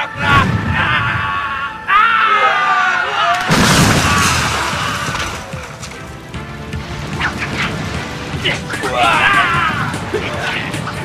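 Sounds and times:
loud drawn-out shout: 0.0s - 5.4s, 8.8s - 10.1s
dramatic music: 3.4s - 11.0s.

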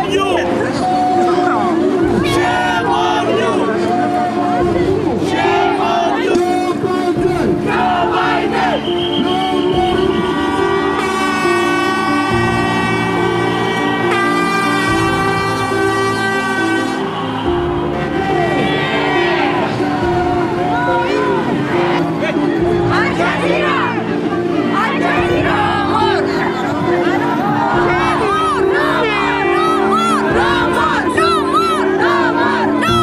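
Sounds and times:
music with held low notes: 0.0s - 33.0s.

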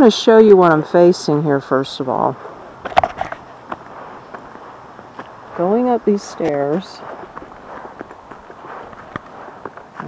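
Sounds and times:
footsteps on concrete steps: 2.3s - 10.0s.

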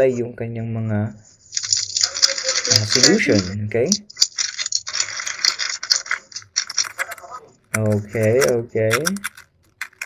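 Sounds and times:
puzzle cube plastic clicks: 1.7s - 10.0s.

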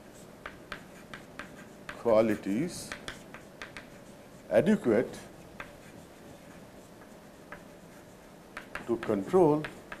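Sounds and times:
chalk scratching on blackboard: 0.0s - 10.0s
chalk tapping: 0.0s - 10.0s.

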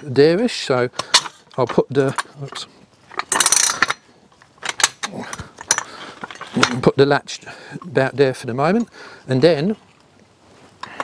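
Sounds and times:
metal jack clicks and knocks: 0.7s - 6.9s.

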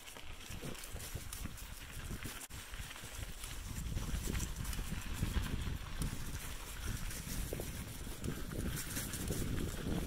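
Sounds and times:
bike rattling on rough trail: 0.0s - 10.0s
wind buffeting microphone: 0.2s - 10.0s.

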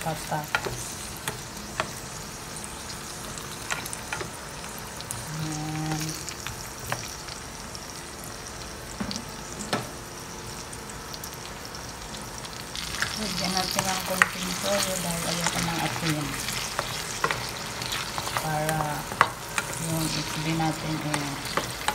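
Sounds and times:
food sizzling in hot oil: 0.0s - 21.9s.

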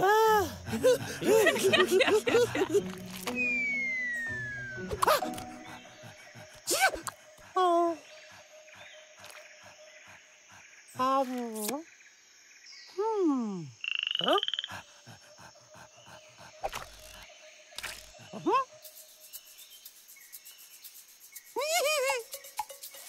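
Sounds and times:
faint jungle background hum: 0.0s - 23.0s
cartoon monkey vocal sounds: 13.6s - 17.2s, 18.1s - 19.0s, 21.4s - 23.0s.

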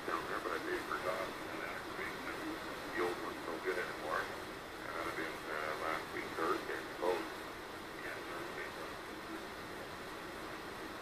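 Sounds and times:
weak radio voice: 0.0s - 7.4s, 8.0s - 9.5s
radio band noise hiss: 0.0s - 11.0s.

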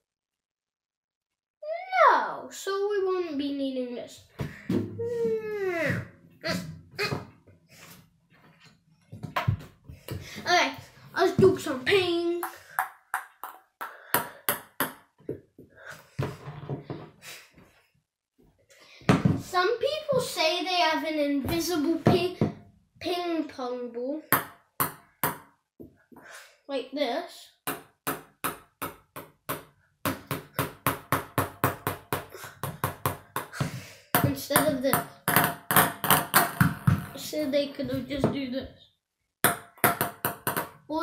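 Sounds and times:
ping-pong ball tapping paddle and table: 12.4s - 15.1s, 24.3s - 25.5s, 27.7s - 37.2s, 39.4s - 40.8s.

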